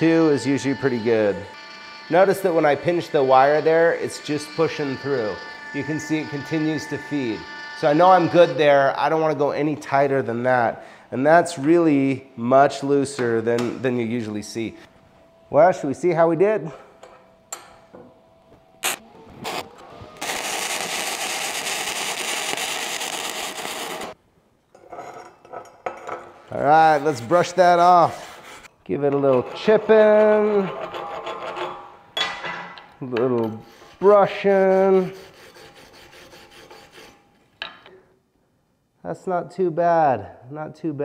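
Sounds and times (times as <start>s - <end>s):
welding arc crackling: 18.8s - 24.2s.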